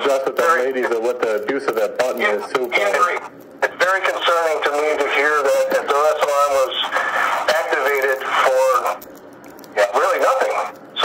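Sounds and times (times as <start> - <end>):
man talking over a phone line: 0.0 - 9.0, 9.7 - 11.0.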